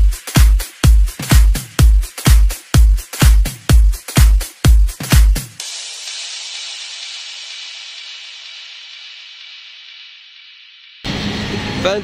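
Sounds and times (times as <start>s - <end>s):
electronic dance music beats: 0.0s - 10.4s
steady hiss: 5.6s - 11.1s
outdoor street noise: 11.1s - 12.0s.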